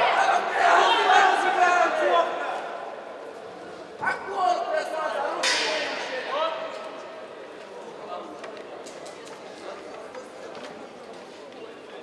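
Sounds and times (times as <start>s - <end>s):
hall background noise: 0.0s - 12.0s.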